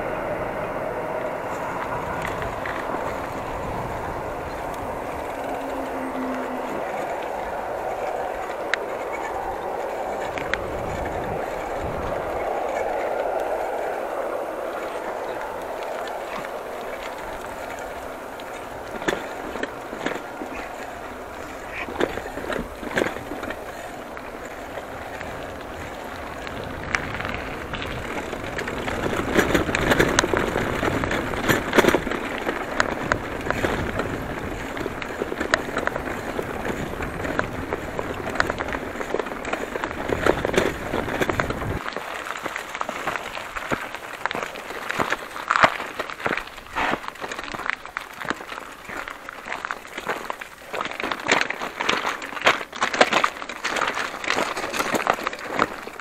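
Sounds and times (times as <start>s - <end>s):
bike rattling and clicking: 0.0s - 56.0s
bike tyres crunching on gravel: 0.0s - 56.0s
low wind rumble on microphone: 0.0s - 56.0s.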